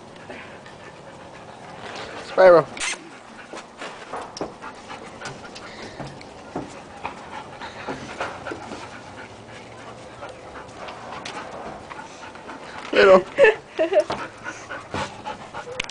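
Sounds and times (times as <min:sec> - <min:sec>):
dogs panting: 0:00.0 - 0:15.9.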